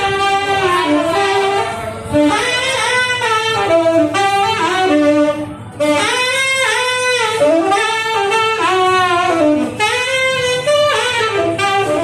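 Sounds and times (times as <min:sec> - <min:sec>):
saxophone jazz melody: 0:00.0 - 0:12.0.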